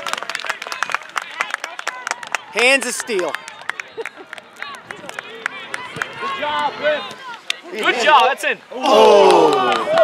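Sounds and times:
spectators clapping: 0:00.0 - 0:06.6, 0:08.8 - 0:10.0.

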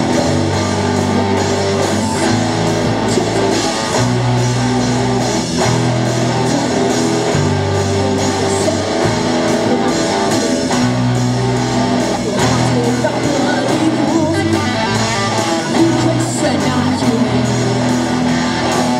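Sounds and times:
live rock band playing: 0:00.0 - 0:18.9.

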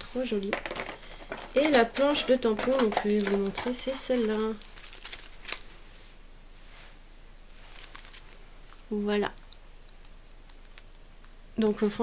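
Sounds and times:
plastic packaging crinkling: 0:00.6 - 0:05.8, 0:07.7 - 0:08.8, 0:10.3 - 0:11.1.

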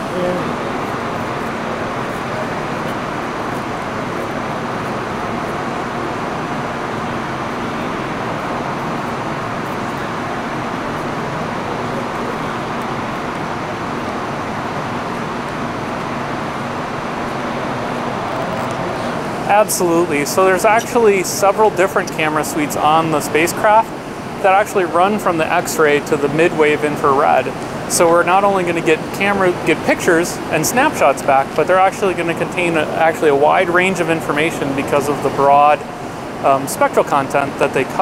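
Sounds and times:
air handling system rush: 0:00.0 - 0:38.0.

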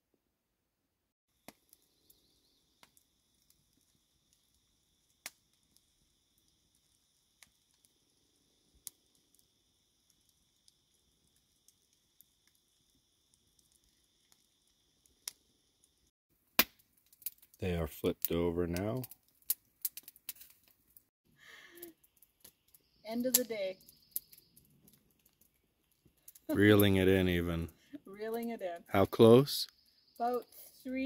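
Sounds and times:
campfire crackling and popping: 0:01.3 - 0:31.0.

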